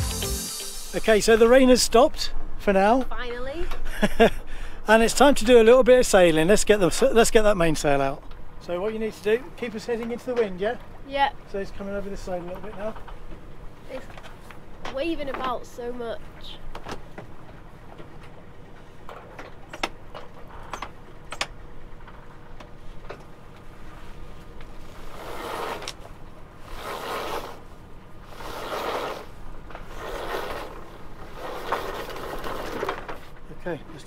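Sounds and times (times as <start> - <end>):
rope rasping pulls: 24.8 - 33.4.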